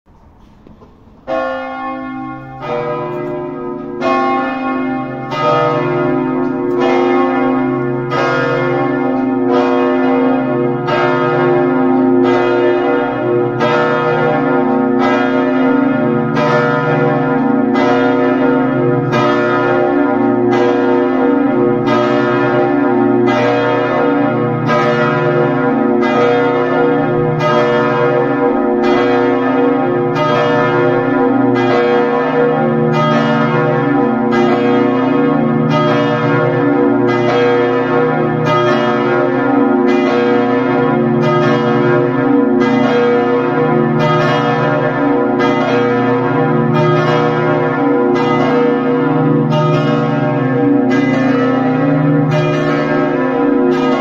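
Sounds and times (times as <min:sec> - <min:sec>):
church bells striking: 0:00.1 - 0:54.0.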